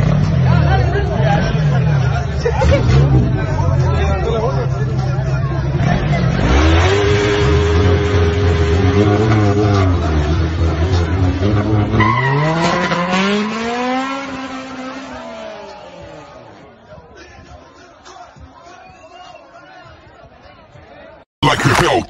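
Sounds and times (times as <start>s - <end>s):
crowd chatter: 0.0s - 11.9s, 13.2s - 22.0s
engine revving: 5.8s - 15.6s.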